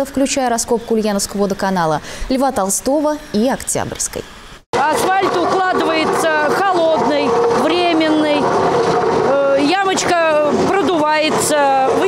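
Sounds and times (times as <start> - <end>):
woman talking: 0.0 - 8.6, 9.3 - 12.0
machinery engine hum: 0.7 - 12.0.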